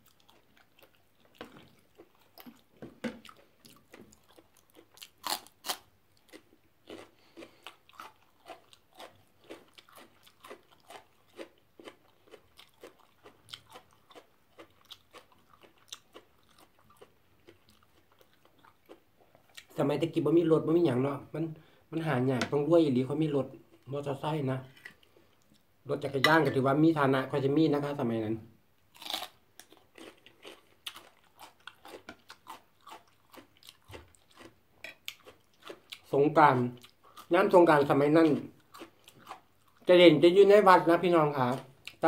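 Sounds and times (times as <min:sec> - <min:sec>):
crunchy vegetable chewing: 0:00.0 - 0:19.8, 0:28.9 - 0:39.9.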